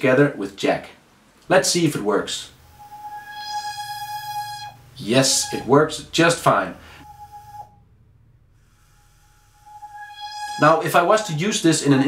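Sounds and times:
synthesizer lead tone: 6.8s - 11.8s.

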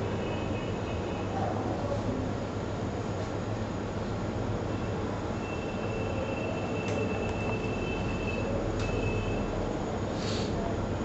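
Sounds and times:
low mains hum: 0.0s - 11.0s
machine hum and hiss: 0.0s - 11.0s.

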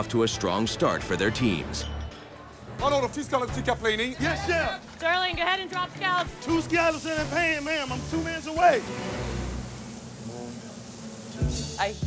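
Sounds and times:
scallops sizzling in a pan: 6.4s - 12.0s.

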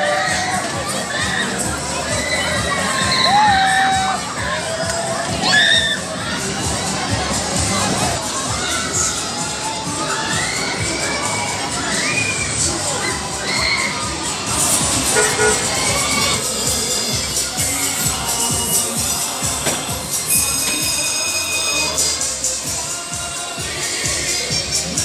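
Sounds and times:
children shouting and cheering: 0.0s - 25.0s.

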